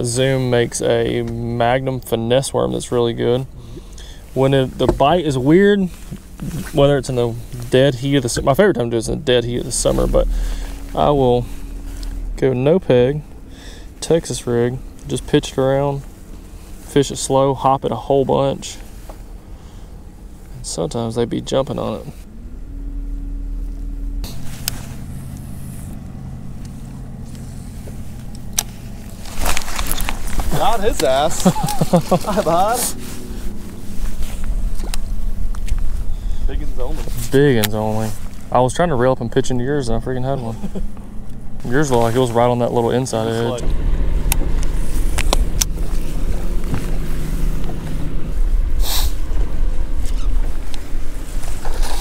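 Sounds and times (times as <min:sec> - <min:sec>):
electric boat motor humming: 0:08.4 - 0:16.8, 0:18.9 - 0:36.5, 0:39.9 - 0:52.0
wind rumble on microphone: 0:43.5 - 0:52.0
short hiss: 0:46.9 - 0:50.4.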